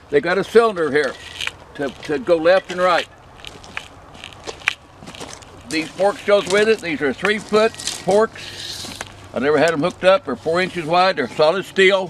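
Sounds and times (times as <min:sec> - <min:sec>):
footsteps on loose gravel: 0:00.6 - 0:11.1.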